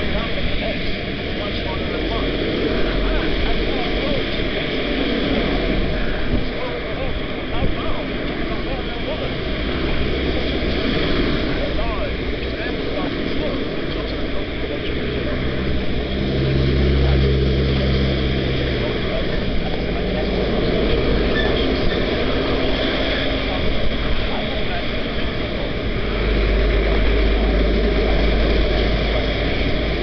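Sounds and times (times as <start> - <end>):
vehicle engine low drone: 0.0 - 30.0
wind and road noise: 0.0 - 30.0.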